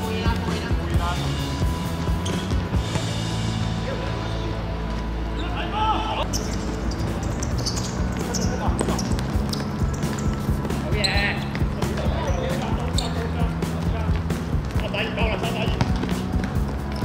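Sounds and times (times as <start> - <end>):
players calling out: 0.0 - 17.0
feet hitting hard court: 1.9 - 3.3, 6.3 - 17.0.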